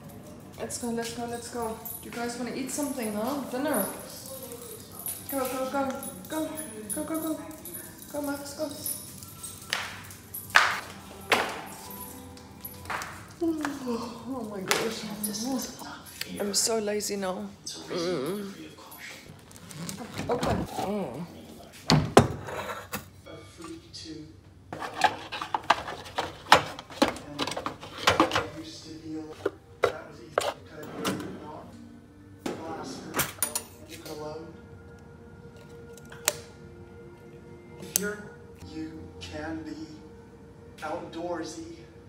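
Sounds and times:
faint music: 0:00.0 - 0:22.1, 0:23.1 - 0:42.0.

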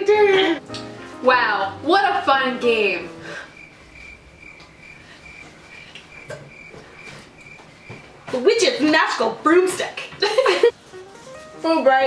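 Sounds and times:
crickets chirping: 0:03.1 - 0:08.4.

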